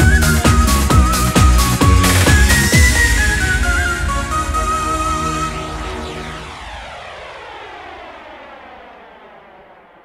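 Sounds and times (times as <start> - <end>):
electronic beat and bassline: 0.0 - 6.6
swept flanged noise falling in pitch: 1.2 - 10.0.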